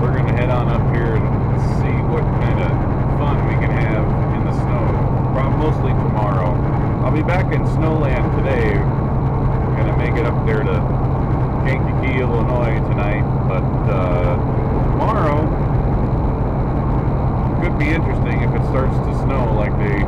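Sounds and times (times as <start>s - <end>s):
man's voice: 0.0s - 8.9s, 9.8s - 10.8s, 11.7s - 15.5s, 17.6s - 20.0s
road noise: 0.0s - 20.0s
truck engine drone: 0.0s - 20.0s.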